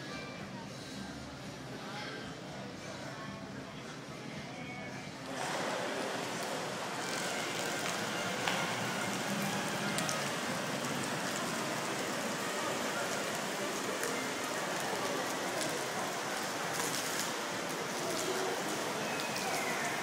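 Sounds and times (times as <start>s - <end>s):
fountain jets splashing into pool: 5.2s - 20.0s.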